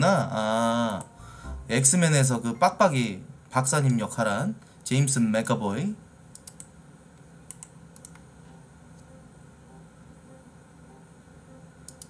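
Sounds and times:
faint low room hum: 0:00.0 - 0:12.0
computer keyboard clicks: 0:06.3 - 0:06.7, 0:07.5 - 0:08.3.

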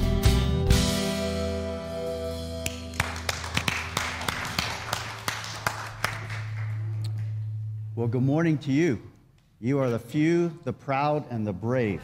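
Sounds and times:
light scattered clapping: 0:02.6 - 0:07.4
steady low hum: 0:03.8 - 0:10.7.

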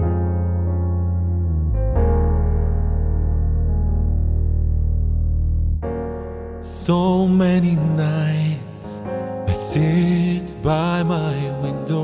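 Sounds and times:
keyboard sustained chords: 0:00.0 - 0:12.0.

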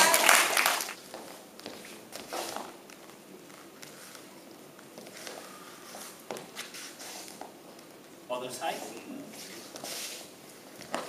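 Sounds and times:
dance shoes scuffing wooden floor: 0:01.0 - 0:07.7, 0:09.3 - 0:11.0.

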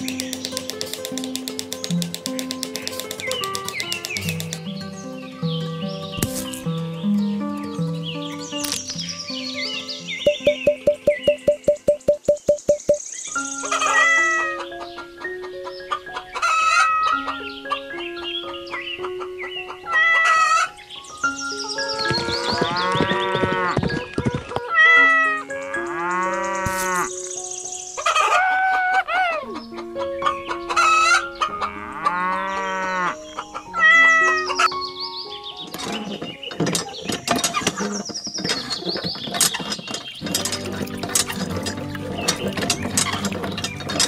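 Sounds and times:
background music melody: 0:00.0 - 0:44.0
cows mooing: 0:25.7 - 0:27.1, 0:31.6 - 0:33.2.

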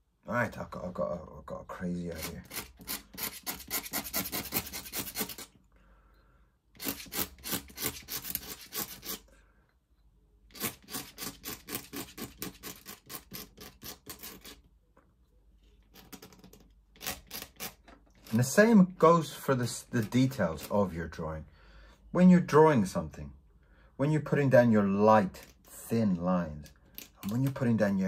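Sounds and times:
pen scratching on paper: 0:02.1 - 0:05.5, 0:06.8 - 0:09.2, 0:10.5 - 0:14.6.

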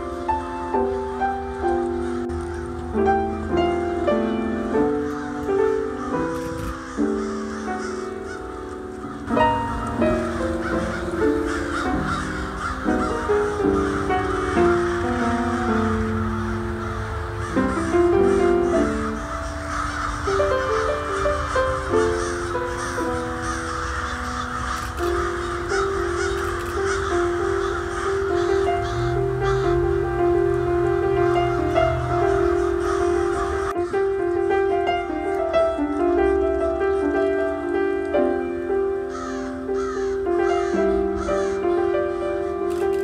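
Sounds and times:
crows cawing: 0:00.0 - 0:43.0
slow instrumental music: 0:00.0 - 0:43.0.

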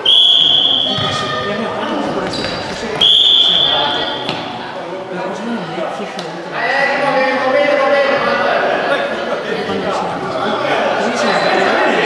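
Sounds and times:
referee's whistle blast: 0:00.0 - 0:01.3, 0:03.0 - 0:04.2
players' voices: 0:00.0 - 0:12.0.

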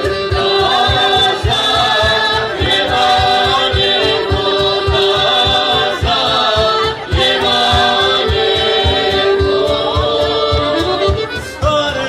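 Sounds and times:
cajon beat: 0:00.0 - 0:12.0
mixed choir singing folk song: 0:00.0 - 0:12.0.

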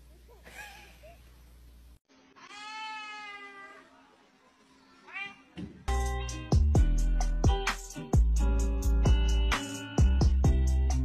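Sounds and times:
loud music with heavy beat: 0:05.9 - 0:11.0.

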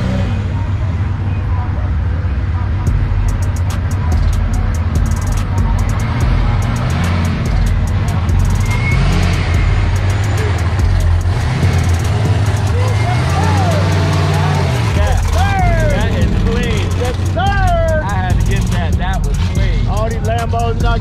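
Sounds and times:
cars driving past rumbling: 0:00.0 - 0:21.0
spectators shouting: 0:05.8 - 0:18.4.

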